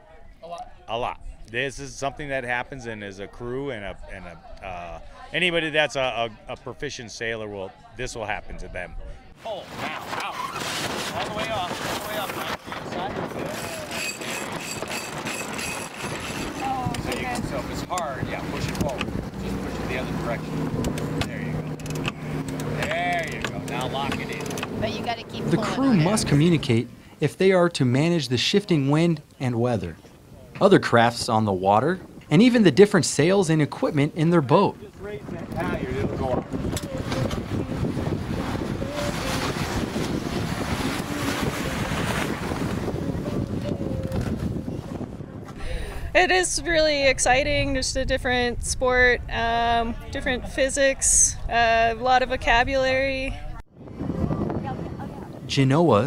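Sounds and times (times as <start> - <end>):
wind: 0.0 - 56.0
water rushing: 13.3 - 29.9, 30.6 - 44.2
faint voices: 34.7 - 47.0.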